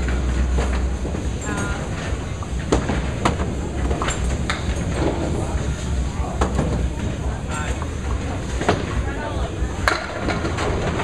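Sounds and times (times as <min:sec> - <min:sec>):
bowling ball rolling: 0:00.0 - 0:11.0.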